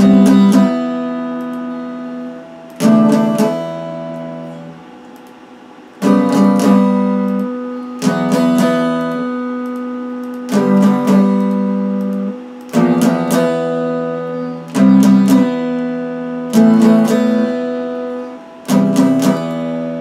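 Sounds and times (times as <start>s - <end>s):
electric guitar strumming chords: 0.0s - 20.0s.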